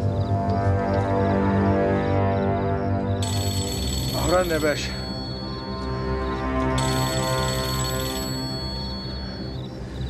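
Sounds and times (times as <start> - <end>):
phone electronic ringtone: 3.2 - 9.7.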